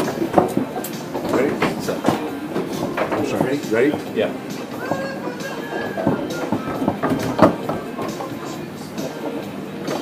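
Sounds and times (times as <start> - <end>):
foosball ball clacking: 0.0 - 10.0
foosball rods sliding and rattling: 0.0 - 10.0.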